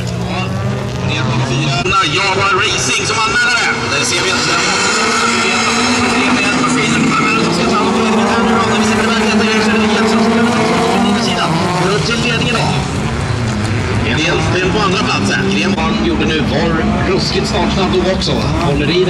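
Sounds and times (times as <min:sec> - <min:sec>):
race car engines revving: 0:00.0 - 0:19.0.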